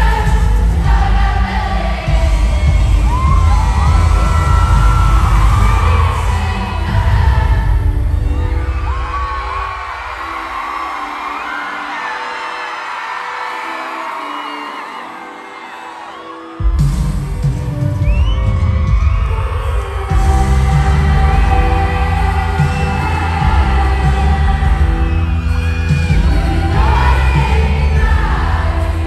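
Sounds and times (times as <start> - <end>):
amplified backing music: 0.0 - 29.0
crowd whooping: 2.4 - 28.9
woman singing into microphone: 19.1 - 29.0.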